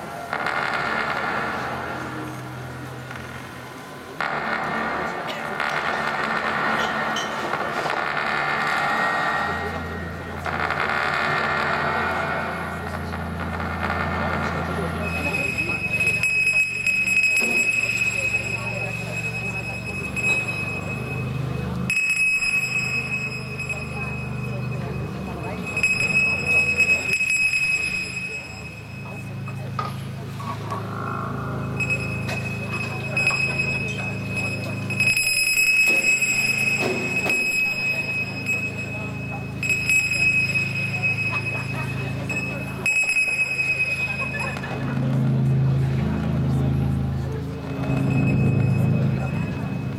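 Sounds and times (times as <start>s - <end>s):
low buzzing drone: 0.0s - 49.9s
high-pitched electronic tone: 4.2s - 45.4s, 47.6s - 49.9s.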